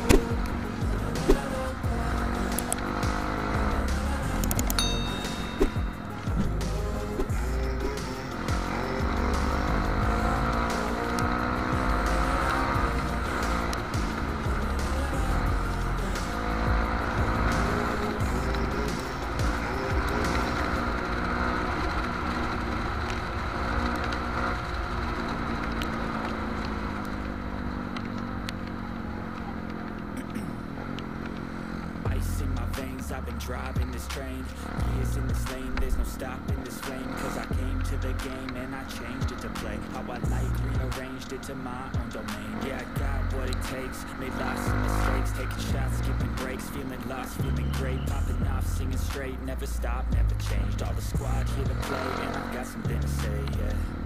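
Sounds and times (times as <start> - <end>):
background music: 0.0 - 54.0
motorcycle engine revving: 0.0 - 54.0.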